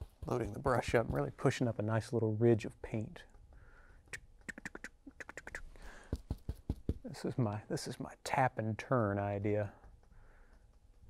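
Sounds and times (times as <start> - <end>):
brush tapping on canvas: 0.0 - 1.6, 5.9 - 7.2.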